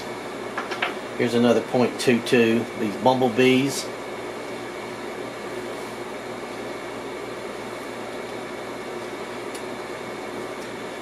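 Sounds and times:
fan hum and hiss: 0:00.0 - 0:11.0.

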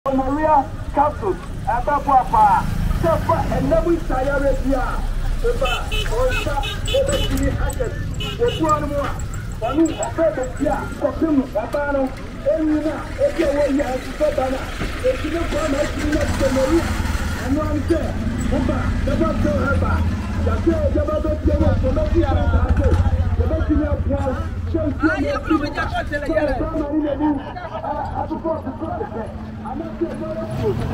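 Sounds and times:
motor tricycle engine running: 0:00.1 - 0:30.9
people talking: 0:00.1 - 0:30.9.

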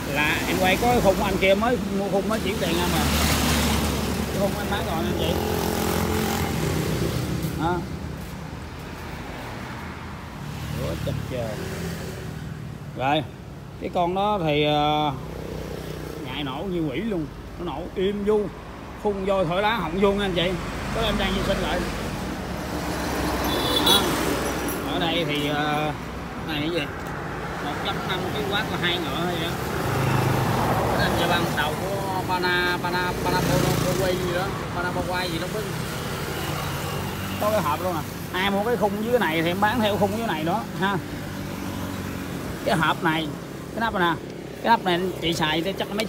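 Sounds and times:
passing road traffic: 0:00.0 - 0:46.0.

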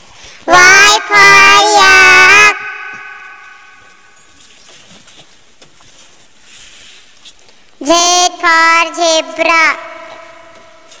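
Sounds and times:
child singing: 0:00.5 - 0:03.2, 0:07.8 - 0:10.5.

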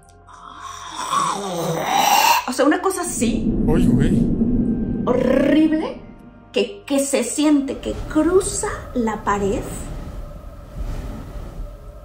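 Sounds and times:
woman growling raspy breath: 0:00.3 - 0:02.5.

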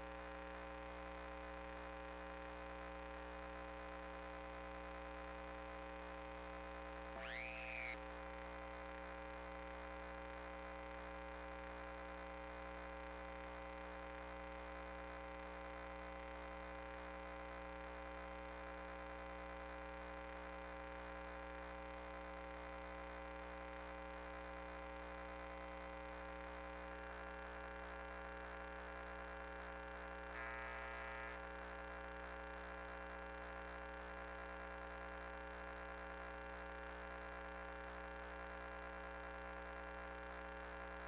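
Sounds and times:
faint electrical hum: 0:00.0 - 0:41.0
whistle-like pitch sweep: 0:07.2 - 0:08.0.

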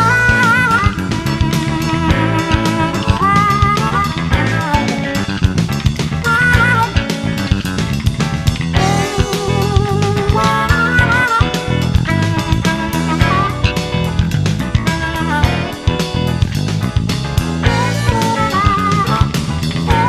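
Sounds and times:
blues band playing: 0:00.0 - 0:20.0
electric guitar bent notes: 0:00.0 - 0:20.0.

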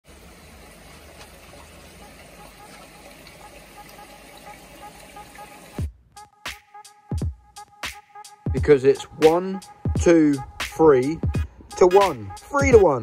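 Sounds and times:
water running into pond: 0:00.0 - 0:05.8.

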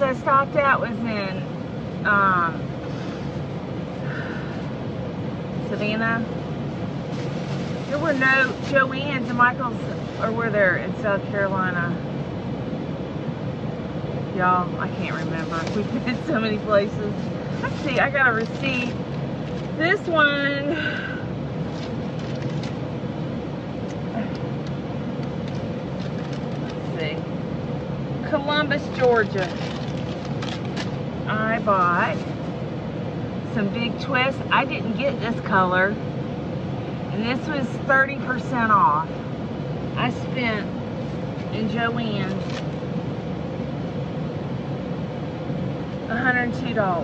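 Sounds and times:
paper rustling: 0:07.1 - 0:08.8, 0:15.1 - 0:19.8, 0:21.6 - 0:22.8, 0:25.2 - 0:26.9, 0:28.8 - 0:31.0.

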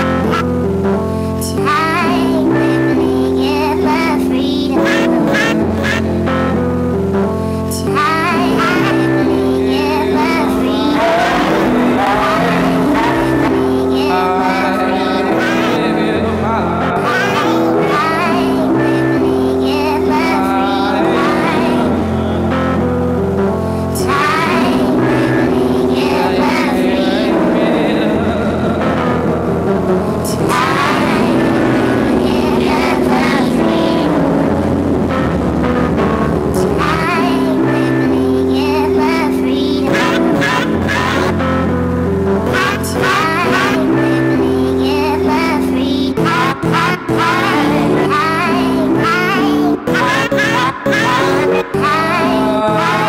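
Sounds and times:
electronic drone music: 0:00.0 - 0:53.0
keyboard chords: 0:00.0 - 0:53.0
wavering vibrato melody: 0:08.4 - 0:39.3.

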